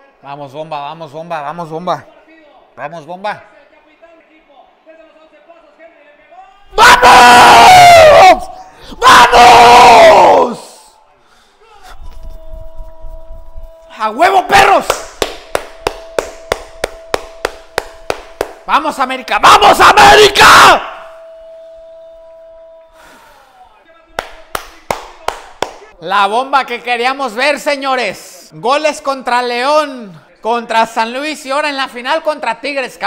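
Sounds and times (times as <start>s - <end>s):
man shouting loudly: 6.4s - 10.9s, 14.0s - 14.9s, 18.7s - 21.0s
man clapping hands: 14.8s - 18.7s, 24.2s - 25.9s.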